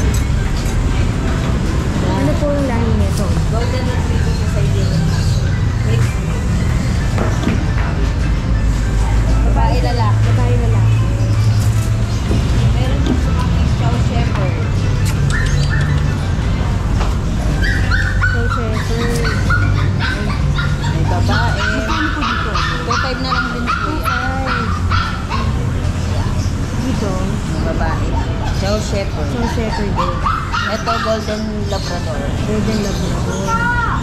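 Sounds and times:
background music: 5.6s - 28.4s
puppies yipping and whimpering: 14.5s - 26.6s, 28.0s - 34.0s.

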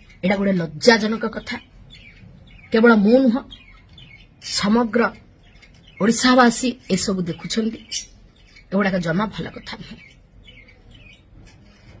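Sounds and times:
faint bird chirping: 0.0s - 12.0s.

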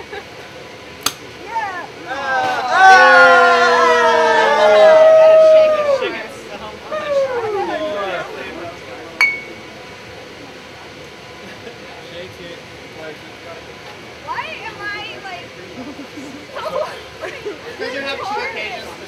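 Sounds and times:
women whooping and squealing: 1.5s - 8.5s
glass bottles clinking: 9.2s - 9.6s.

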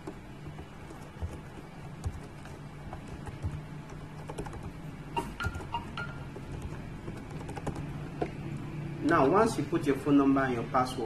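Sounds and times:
keyboard typing: 0.0s - 8.4s
low steady hum: 0.0s - 11.0s.

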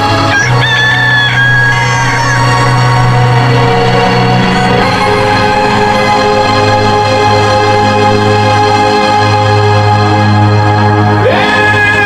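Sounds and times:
rooster crowing: 0.0s - 2.9s.

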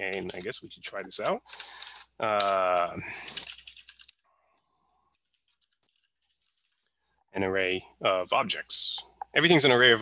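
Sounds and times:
computer keyboard typing: 1.5s - 4.2s.

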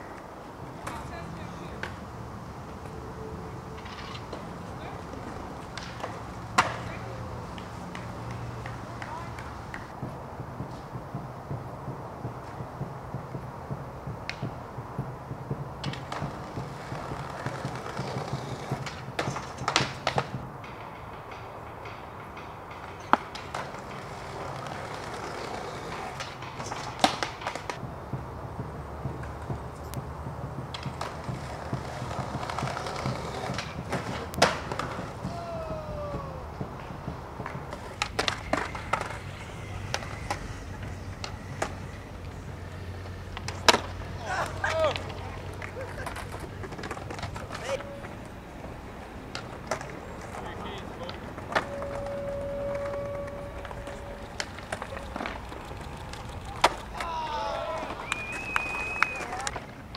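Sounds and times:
skateboard tail clacks: 0.0s - 59.9s
skateboard wheels rolling on concrete: 0.0s - 59.9s.

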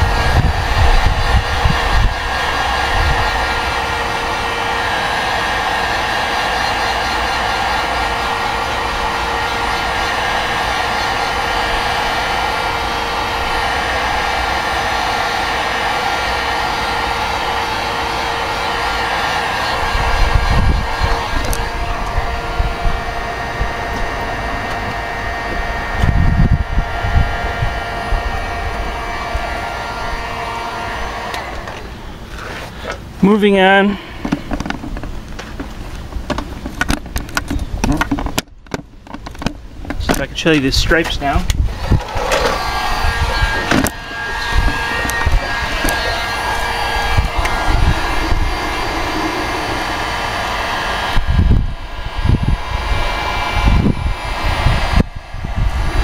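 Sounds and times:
heat gun blower whine: 0.0s - 56.0s
low rumbles: 44.2s - 56.0s.

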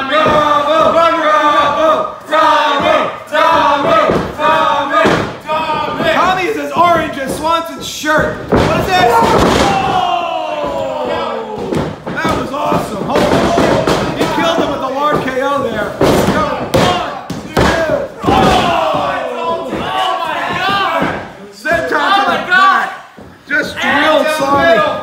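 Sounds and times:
people shouting and yelling: 0.0s - 25.0s.

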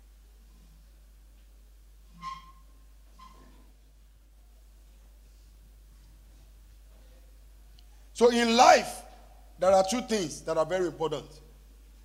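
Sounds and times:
faint hall background: 0.0s - 12.0s.

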